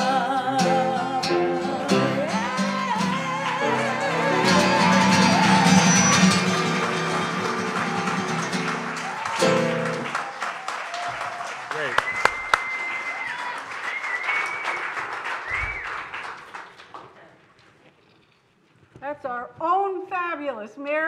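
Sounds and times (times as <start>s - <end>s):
person singing live: 0.0s - 8.9s
guitar: 0.0s - 10.3s
audience applause and cheering: 2.0s - 17.2s.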